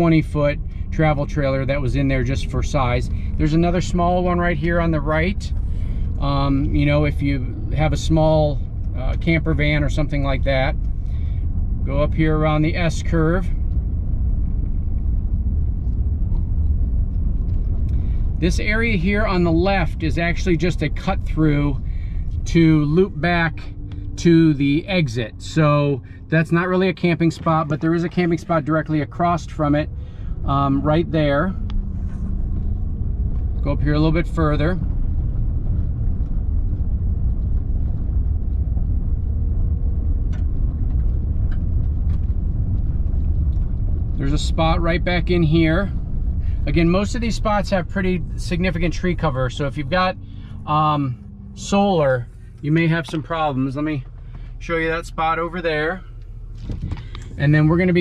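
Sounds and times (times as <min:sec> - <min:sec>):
vehicle rumbling on gravel road: 0:00.0 - 0:58.0.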